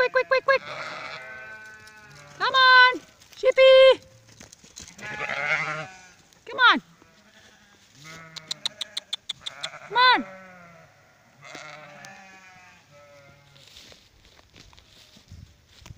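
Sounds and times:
sheep bleating: 0.0 - 3.2, 4.9 - 13.8.

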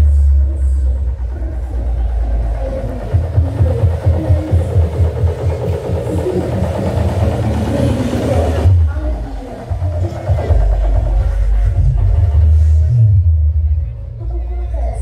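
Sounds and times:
bass-heavy music with thumping beat: 0.0 - 15.0
crowd voices: 0.0 - 15.0.

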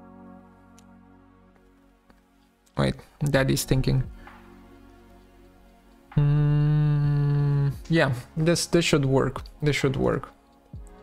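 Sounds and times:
man humming: 6.2 - 7.8.

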